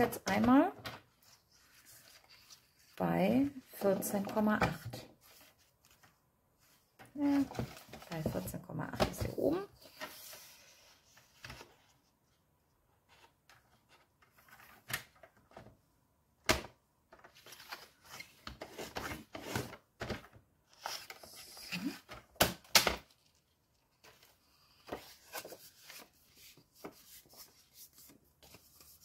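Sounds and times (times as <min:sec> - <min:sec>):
paper rustling: 0:23.0 - 0:29.0.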